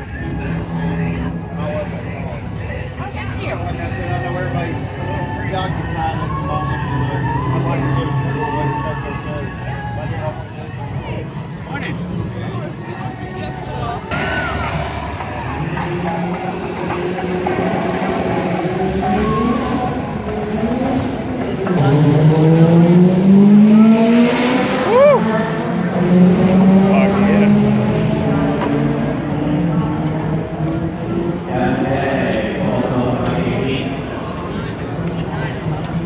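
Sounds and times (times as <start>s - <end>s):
race car engines accelerating: 0.0s - 36.0s.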